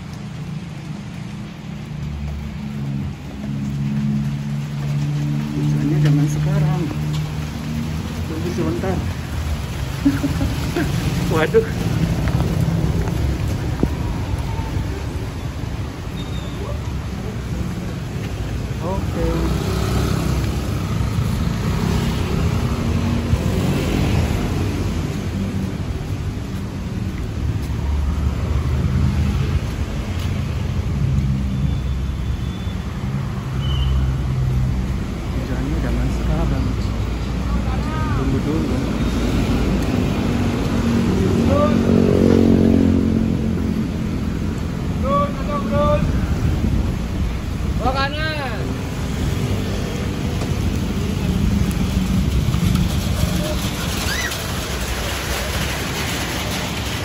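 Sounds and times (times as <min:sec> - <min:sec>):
cars passing on wet road: 0:00.0 - 0:57.0.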